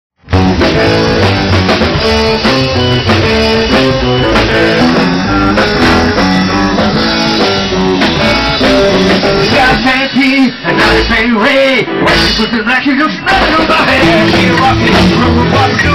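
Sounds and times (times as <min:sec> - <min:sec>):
blues band playing live: 0:00.2 - 0:15.9
electric guitar: 0:00.2 - 0:15.9.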